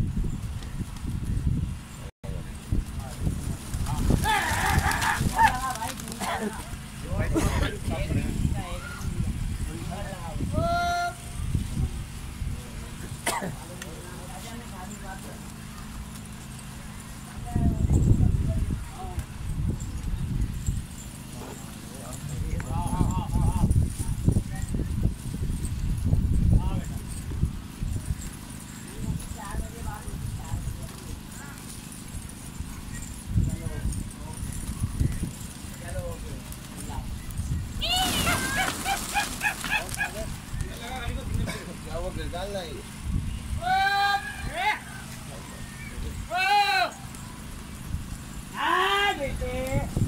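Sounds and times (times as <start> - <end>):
pigeons wings flapping: 2.7 - 7.3, 13.0 - 17.4, 30.5 - 33.3, 34.0 - 41.8
man calling to birds: 10.0 - 11.3, 42.8 - 47.1, 48.5 - 50.0.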